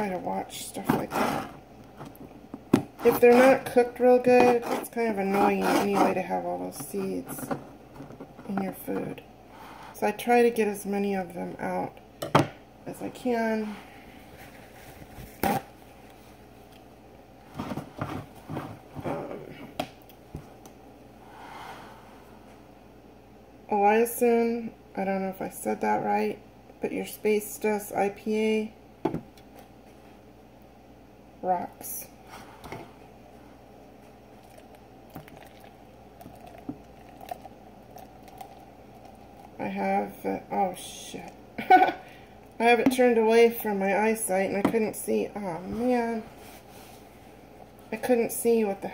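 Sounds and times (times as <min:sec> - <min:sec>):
beer pouring into cup: 0:34.4 - 0:39.6.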